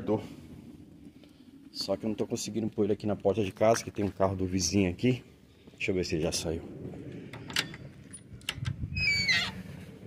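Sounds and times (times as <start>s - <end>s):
gate hinges squealing: 8.9s - 9.6s.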